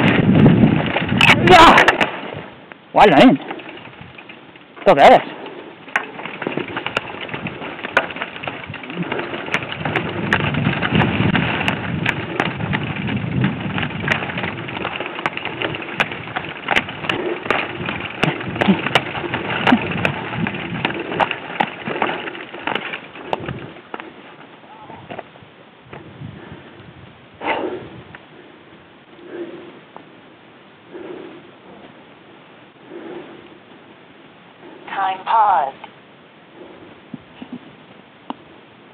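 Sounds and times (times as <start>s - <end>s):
bike rattling over bumps: 0.0s - 27.0s
rushing noise of bike ride: 0.0s - 37.6s.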